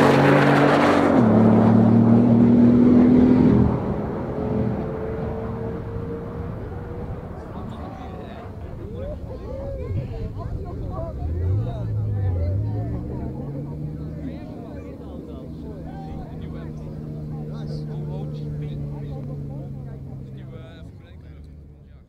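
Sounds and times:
car engines revving: 0:00.0 - 0:22.0
faint voices: 0:04.8 - 0:22.0.

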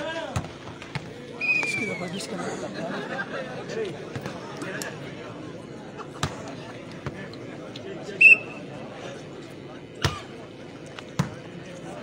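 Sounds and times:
murmur of crowd voices: 0:00.0 - 0:12.0
volleyball bouncing on dirt: 0:00.3 - 0:01.1, 0:11.1 - 0:11.4.

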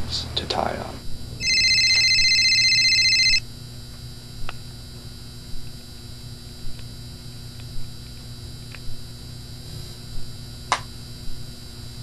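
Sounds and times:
phone ringtone trilling: 0:01.4 - 0:03.4.

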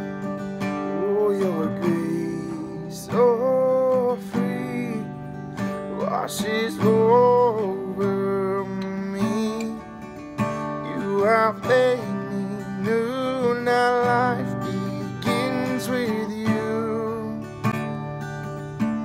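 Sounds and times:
acoustic guitar strumming: 0:00.0 - 0:19.0
man singing: 0:00.8 - 0:17.8.

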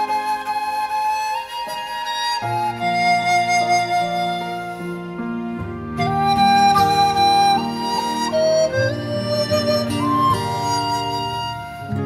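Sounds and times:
bamboo flute melody: 0:00.0 - 0:12.0.

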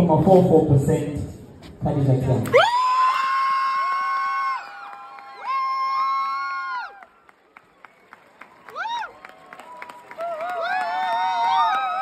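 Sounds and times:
people cheering with whoops: 0:02.5 - 0:12.0.

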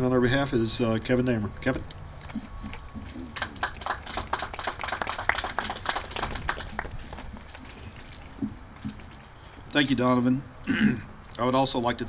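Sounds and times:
audience applauding: 0:03.2 - 0:07.7.

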